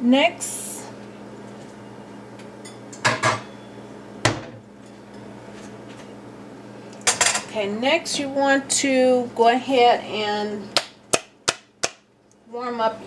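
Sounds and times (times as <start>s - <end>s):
cookware clattering: 2.6s - 3.6s.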